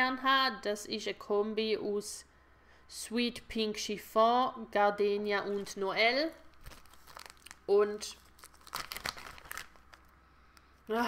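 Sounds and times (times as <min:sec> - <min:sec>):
plastic container crinkling: 0:05.5 - 0:10.2.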